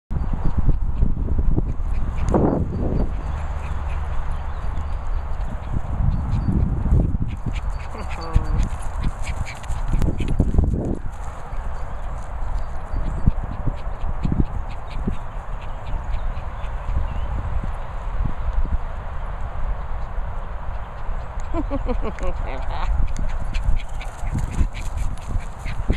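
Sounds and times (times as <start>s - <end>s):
dogs playing: 1.6s - 17.2s, 19.8s - 25.9s.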